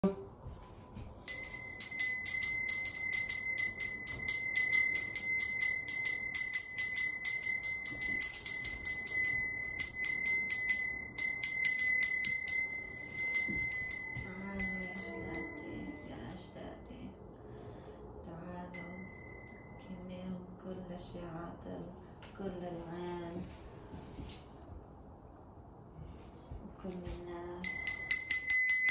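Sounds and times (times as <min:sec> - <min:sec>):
hand bell ringing rapidly: 0:01.3 - 0:15.9, 0:18.7 - 0:19.5, 0:27.6 - 0:28.9.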